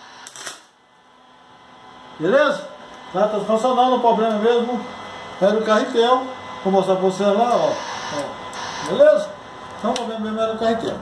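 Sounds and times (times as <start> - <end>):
welder arc crackling: 0.0 - 1.1, 7.0 - 11.0.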